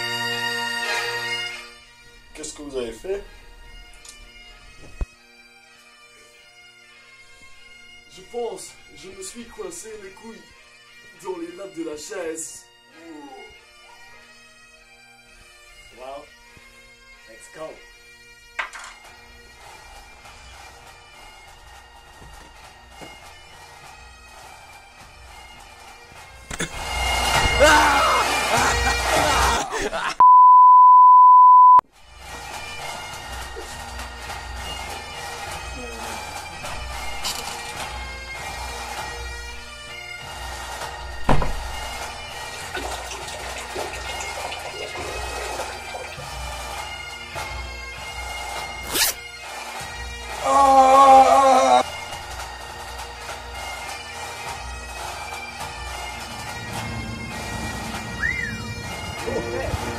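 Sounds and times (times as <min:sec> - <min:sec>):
bagpipe music: 0:00.0 - 0:30.2, 0:31.9 - 0:59.9
sharp knock: 0:41.3 - 0:41.8.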